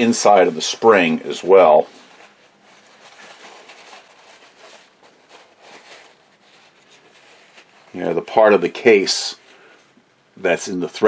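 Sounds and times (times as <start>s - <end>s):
paper towel rustling and rubbing: 0.0s - 10.0s.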